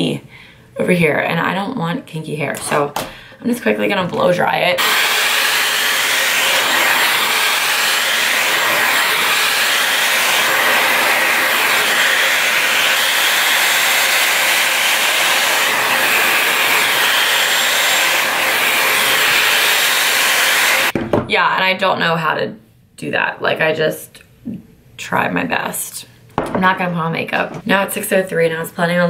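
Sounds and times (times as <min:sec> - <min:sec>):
hair dryer blowing air: 0:03.9 - 0:21.0.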